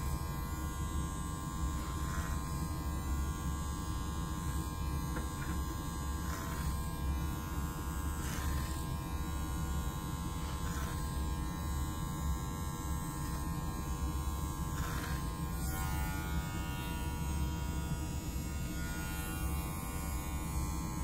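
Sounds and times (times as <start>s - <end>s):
low electrical buzz: 0.0s - 21.0s
shears snipping hair: 1.8s - 3.3s, 4.3s - 7.6s, 8.2s - 9.5s, 10.3s - 11.6s, 14.6s - 17.8s.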